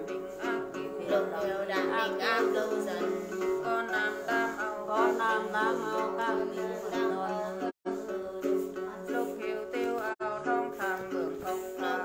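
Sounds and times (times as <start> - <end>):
plucked lute notes: 0.0 - 12.0
woman singing a chant: 0.0 - 12.0.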